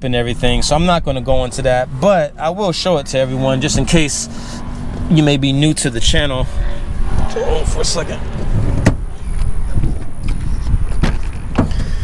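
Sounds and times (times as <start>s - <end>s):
wind rumble: 3.8s - 12.0s
truck door clicking open: 8.4s - 12.0s.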